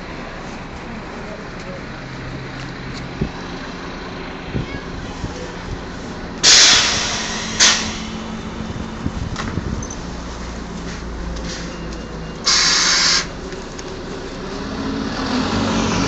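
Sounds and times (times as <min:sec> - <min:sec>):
bus idling: 0:00.0 - 0:16.0
compressed air hiss: 0:06.0 - 0:08.4, 0:12.4 - 0:13.3.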